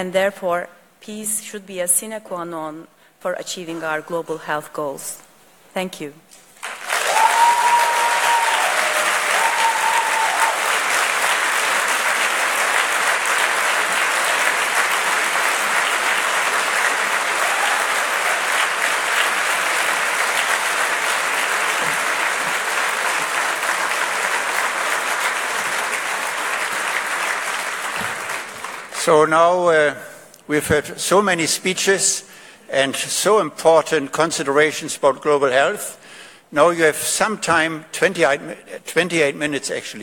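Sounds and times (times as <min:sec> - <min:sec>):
audience applauding: 0:06.6 - 0:29.2.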